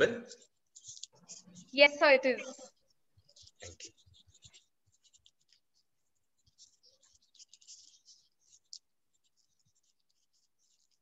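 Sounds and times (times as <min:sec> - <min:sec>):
faint clicks and scratches: 0:00.3 - 0:11.0.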